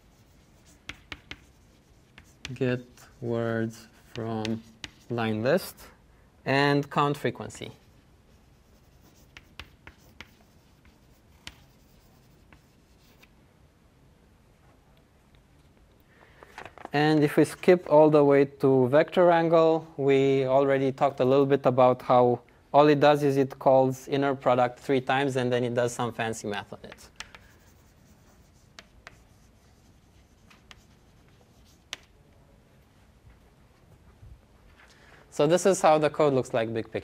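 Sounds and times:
chalk tapping and scratching on board: 0.0s - 5.8s, 7.8s - 13.3s, 26.5s - 32.2s
quiet room hiss: 0.0s - 37.0s.

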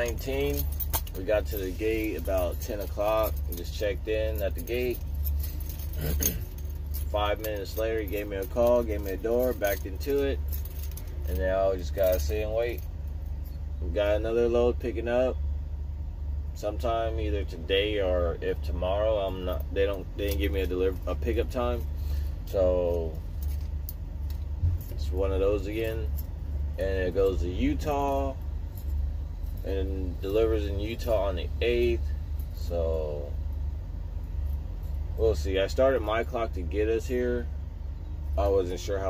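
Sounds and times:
diesel engine idling: 0.0s - 39.0s.

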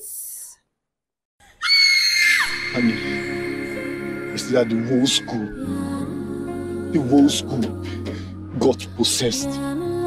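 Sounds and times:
woman screaming: 1.6s - 3.9s
background music: 2.2s - 10.0s.

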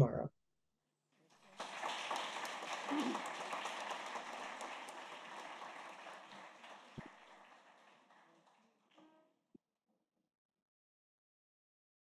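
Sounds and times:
audience applauding: 1.3s - 9.2s.

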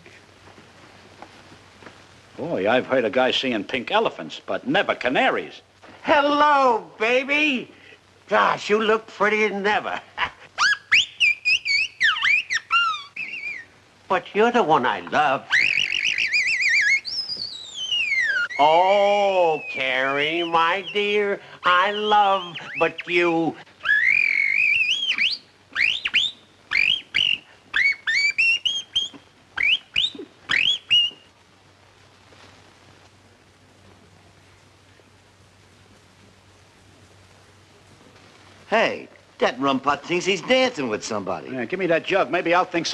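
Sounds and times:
whistled bird-like chirps: 10.6s - 13.7s, 15.5s - 21.1s, 23.8s - 31.3s.

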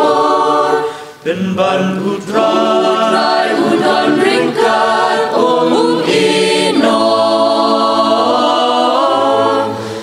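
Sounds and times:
mixed choir singing in harmony: 0.0s - 10.0s.

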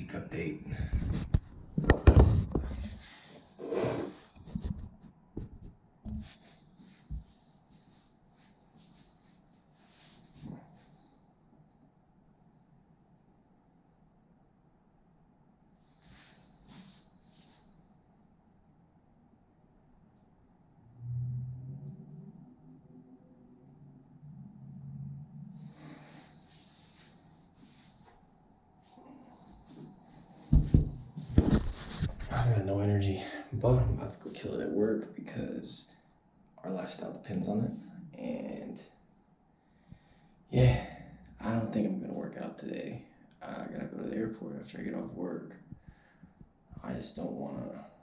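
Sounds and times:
soft knocks and shuffles: 4.4s - 11.0s, 25.8s - 32.6s.

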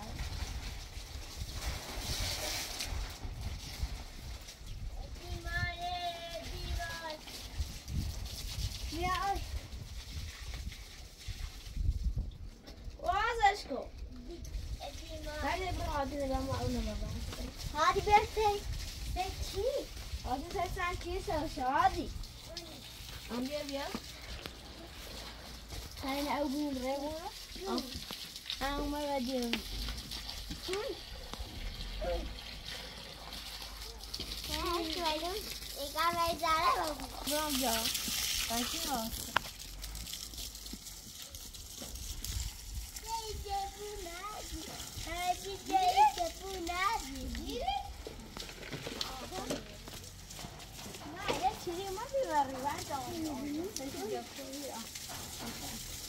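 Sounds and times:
garden hose water hissing: 0.0s - 56.0s.

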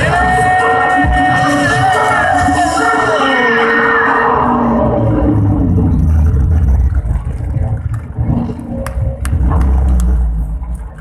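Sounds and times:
loud low rumble: 4.0s - 11.0s.

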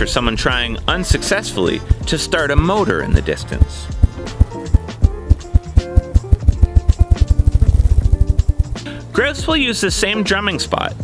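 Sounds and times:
background music: 0.0s - 11.0s
grouse wingbeat thumps: 3.2s - 8.9s.

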